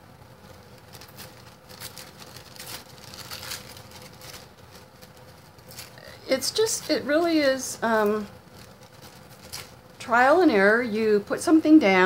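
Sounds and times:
tissue paper rustling: 0.3 - 10.8.

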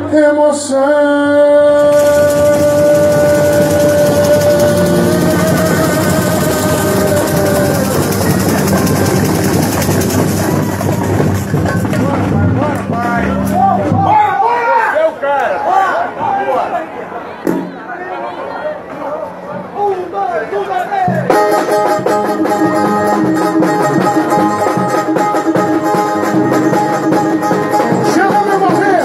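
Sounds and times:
man singing long note: 0.0 - 9.5
samba band with percussion: 1.9 - 14.6, 21.1 - 29.0
people talking: 1.9 - 21.4, 27.8 - 29.0.

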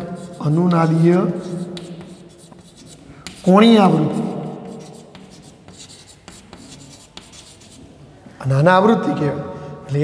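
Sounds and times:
chalk scratching on blackboard: 0.0 - 8.0.

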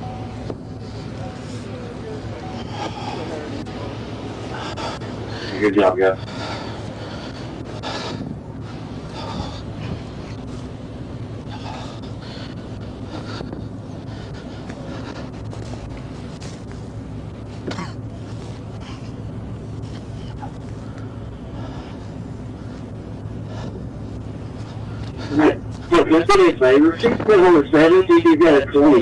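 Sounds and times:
faint scattered noises: 0.0 - 29.0
vehicle engine idling: 0.0 - 29.0.

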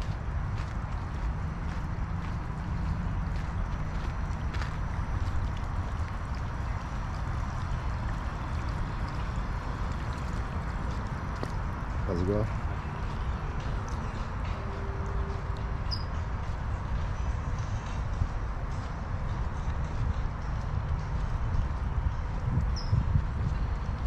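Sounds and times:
rushing outdoor noise: 0.0 - 24.0.

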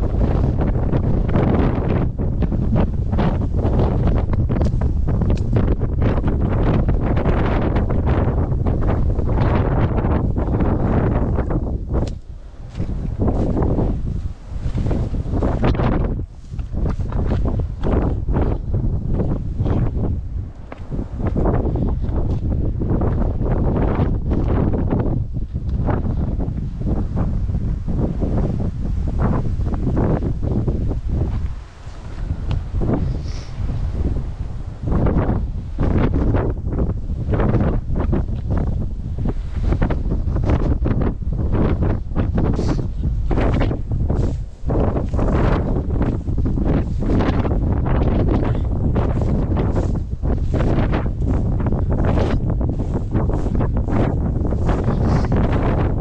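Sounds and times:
strong wind buffeting microphone: 0.0 - 56.0.

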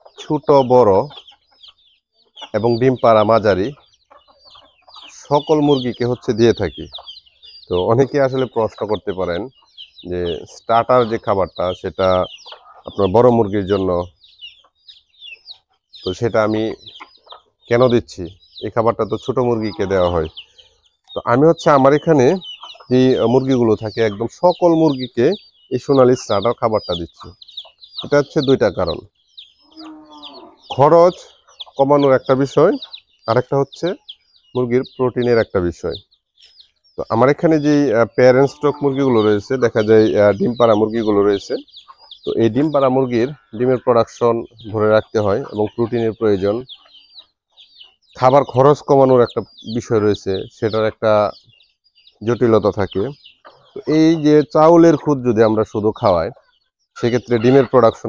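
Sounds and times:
man talking: 0.0 - 1.2, 2.6 - 3.8, 5.1 - 7.0, 7.7 - 14.1, 16.0 - 17.0, 17.7 - 20.3, 21.2 - 27.4, 28.0 - 29.1, 30.7 - 34.0, 34.6 - 36.0, 37.0 - 41.7, 42.3 - 46.7, 48.2 - 51.4, 52.2 - 53.2, 53.8 - 56.4, 57.0 - 58.0
hens clucking: 0.0 - 51.6, 52.2 - 58.0
chicks peeping: 0.0 - 58.0.

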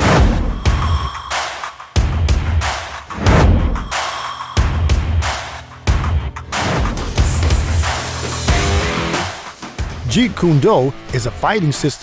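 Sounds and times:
cinematic trailer music: 0.0 - 12.0.

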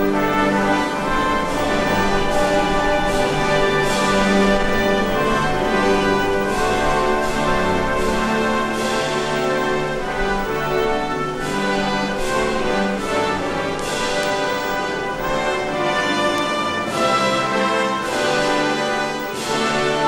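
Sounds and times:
slow orchestral music with brass: 0.0 - 20.0.

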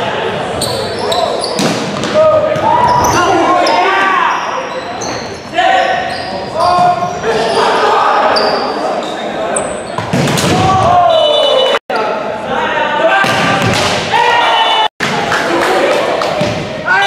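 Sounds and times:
sneakers squeaking on hardwood floor: 0.6 - 10.4
players and spectators shouting: 2.1 - 4.9, 5.5 - 9.7, 10.5 - 15.9.

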